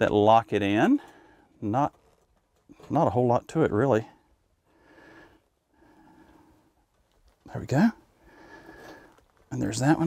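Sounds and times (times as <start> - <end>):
faint breaths: 1.0 - 1.6, 4.0 - 7.4, 8.0 - 9.5.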